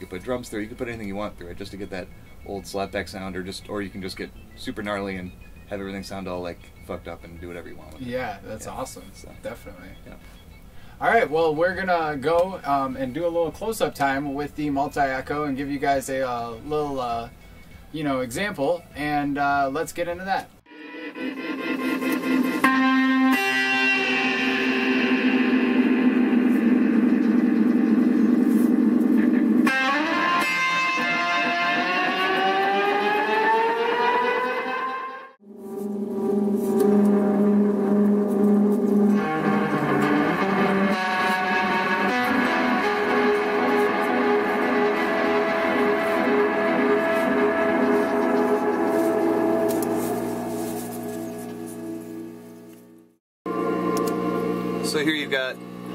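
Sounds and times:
electric guitar with tape echo: 20.7s - 35.2s, 35.9s - 51.7s, 53.5s - 55.9s.

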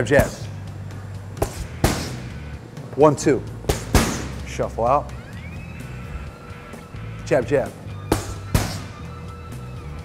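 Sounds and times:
background music: 0.0s - 10.0s
boxing gloves hitting mitts: 1.4s - 2.3s, 3.7s - 4.5s, 8.0s - 9.0s.

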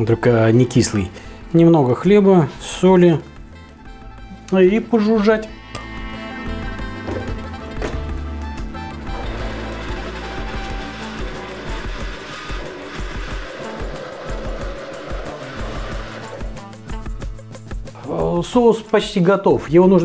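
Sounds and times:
background music: 0.0s - 20.0s
blender motor running: 8.6s - 17.3s.

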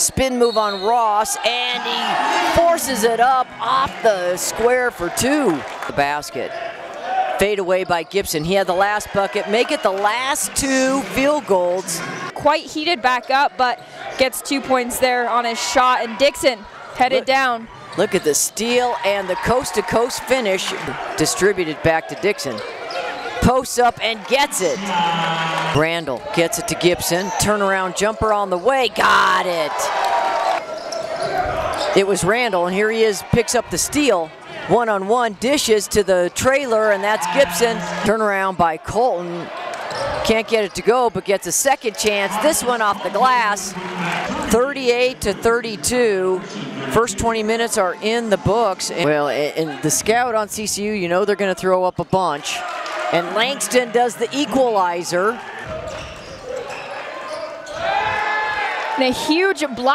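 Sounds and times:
players and crowd noise: 0.0s - 59.9s
voices in a gym: 0.0s - 59.9s.

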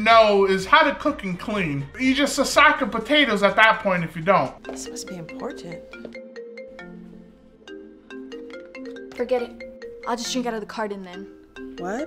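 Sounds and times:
phone ringtone chiming: 4.6s - 10.5s.

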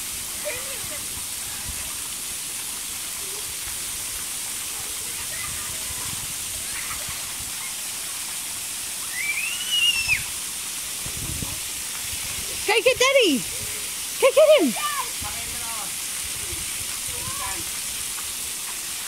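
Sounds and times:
water spraying from fountain jets: 0.0s - 19.0s
high-pitched cry: 14.2s - 15.1s.

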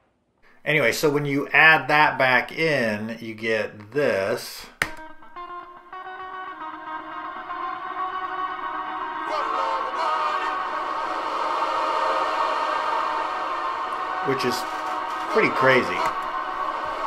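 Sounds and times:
ambient wash of echoing tones: 6.6s - 17.0s.

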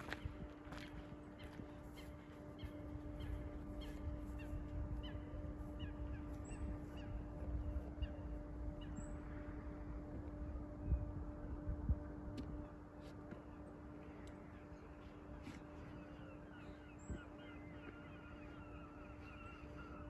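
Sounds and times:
low wind rumble on microphone: 0.0s - 20.0s
steady faint hum: 0.0s - 20.0s.

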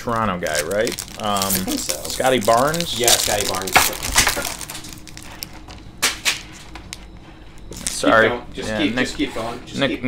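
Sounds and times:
plastic wrapper crinkling: 0.0s - 8.1s.

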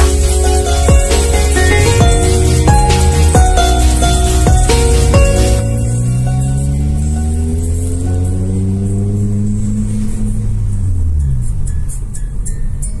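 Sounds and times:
music playing: 0.0s - 9.5s
car engine accelerating: 0.0s - 13.0s.

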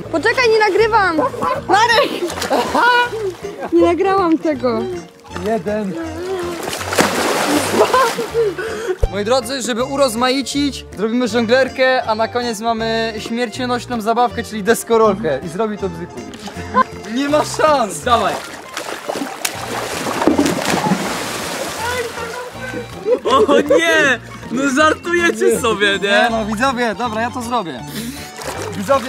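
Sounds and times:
body slapping water: 1.3s - 4.4s, 5.0s - 8.9s, 16.4s - 23.5s, 28.1s - 29.0s
churning water splash: 5.1s - 8.6s, 17.3s - 23.3s, 28.2s - 29.0s.

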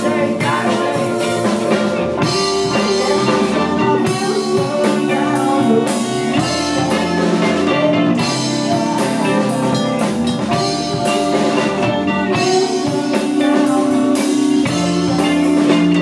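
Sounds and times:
drum kit groove: 0.0s - 16.0s
electric bass: 0.0s - 16.0s.

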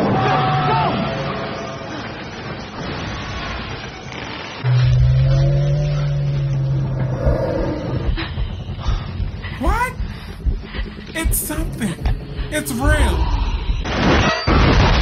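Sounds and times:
steady low drone: 4.6s - 14.2s.

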